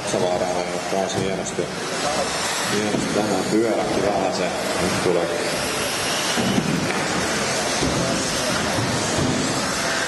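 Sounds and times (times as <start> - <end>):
murmur of crowd voices: 0.0 - 10.0
rc car motors and tyres: 0.0 - 10.0.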